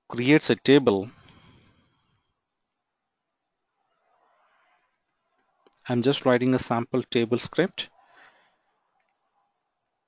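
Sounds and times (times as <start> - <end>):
man speaking: 0.1 - 1.2, 5.9 - 7.9
faint computer keyboard clicks: 8.2 - 10.0.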